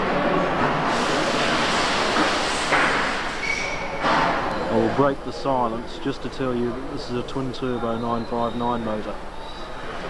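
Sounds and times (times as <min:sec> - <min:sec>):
factory machinery noise: 0:00.0 - 0:10.0.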